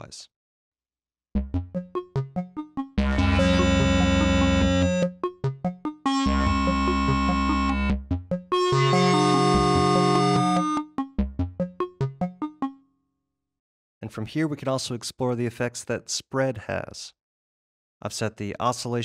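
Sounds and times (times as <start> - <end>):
synthesizer plucked note sequence: 1.4 - 12.8
sustained synthesizer chords: 3.0 - 5.0, 6.1 - 8.0.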